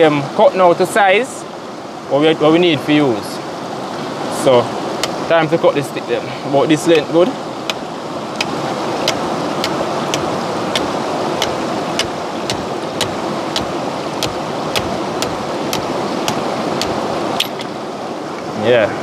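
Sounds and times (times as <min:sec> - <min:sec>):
river water rushing over rocks: 0:00.0 - 0:18.8
machete cutting a stick: 0:08.4 - 0:17.6.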